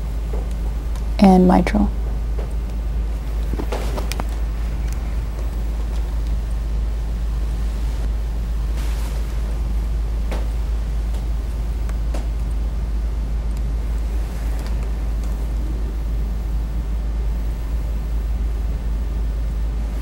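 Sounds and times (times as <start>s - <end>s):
low background hum: 0.0s - 20.0s.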